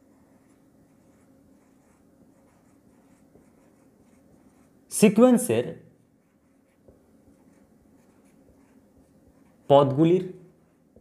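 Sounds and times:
marker scratching on whiteboard: 0.0s - 11.0s.

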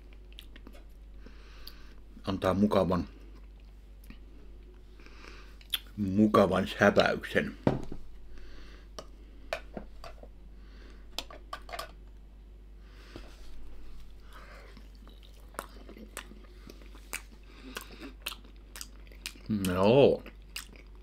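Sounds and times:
person chewing pastry: 0.0s - 2.2s, 3.1s - 5.9s, 13.1s - 21.0s
mouth clicks: 5.6s - 5.9s.

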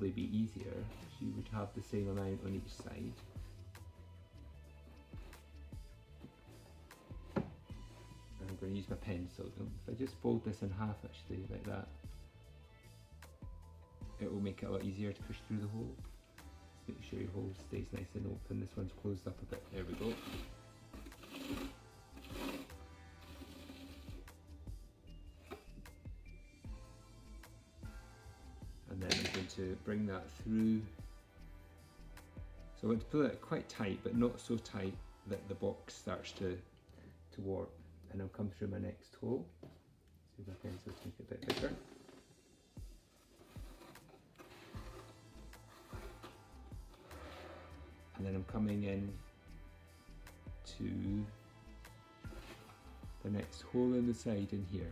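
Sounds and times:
quiet background music: 0.0s - 54.9s
twine rasping through cardboard: 19.5s - 24.4s, 43.0s - 48.0s, 52.2s - 53.3s.

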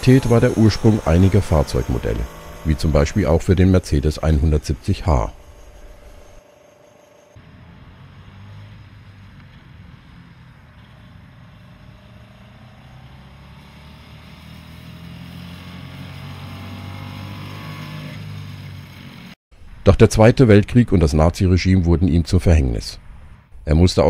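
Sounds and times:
small car engine driving by: 0.0s - 19.4s.

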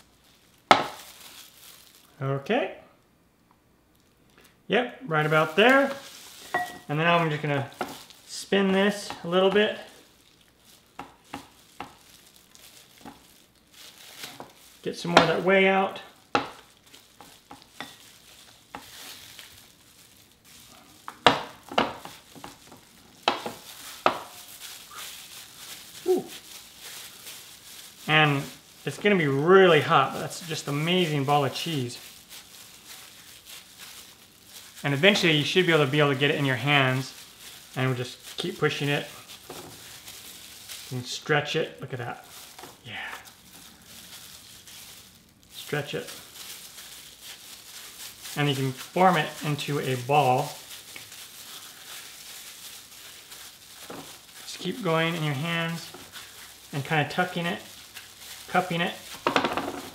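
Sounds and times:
wet squishing of cheese curd: 0.3s - 2.1s, 5.6s - 14.9s, 16.1s - 59.3s.

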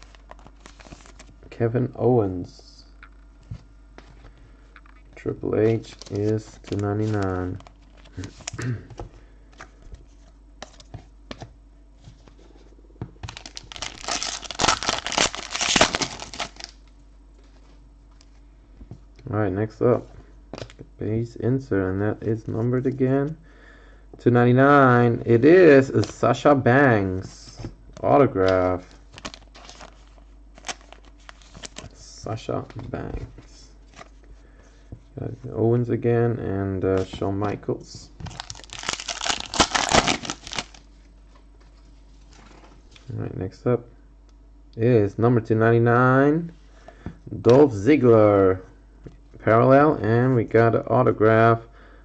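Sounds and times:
wrapper being torn and crinkled: 13.3s - 16.8s, 29.1s - 31.8s, 38.3s - 40.8s.

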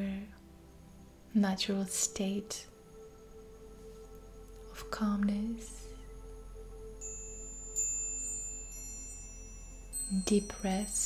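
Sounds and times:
metal wind chime ringing: 7.0s - 11.0s.

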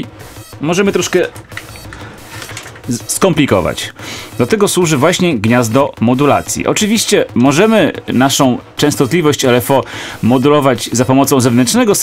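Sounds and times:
synthesizer white-noise clicks: 0.0s - 12.0s.

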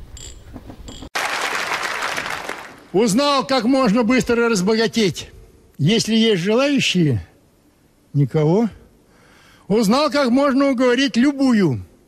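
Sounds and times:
audience applauding: 1.2s - 2.9s.

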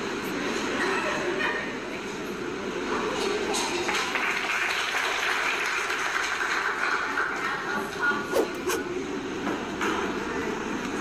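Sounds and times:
audience applauding: 3.8s - 7.6s.

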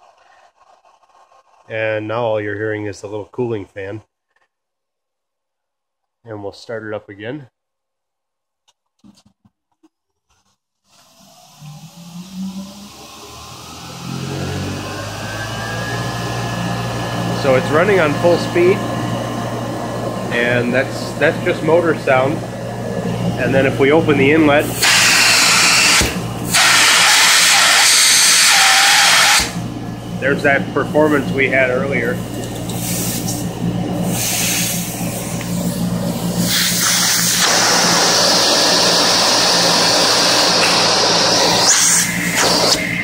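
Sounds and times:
vacuum motor whine rising: 11.0s - 43.0s
hiss of air suction: 24.8s - 29.6s, 32.7s - 33.4s, 34.1s - 35.6s, 36.2s - 43.0s.

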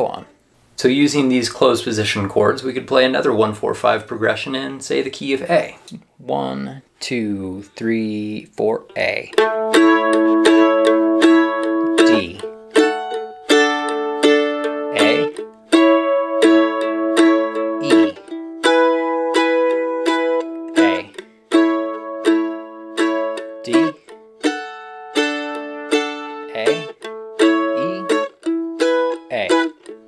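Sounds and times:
mandolin strumming chords: 9.3s - 30.0s.

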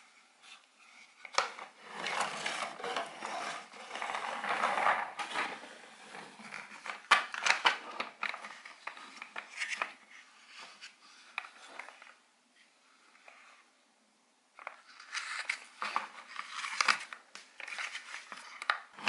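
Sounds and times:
plastic parts scraping and rattling: 0.9s - 12.2s, 14.6s - 19.0s.

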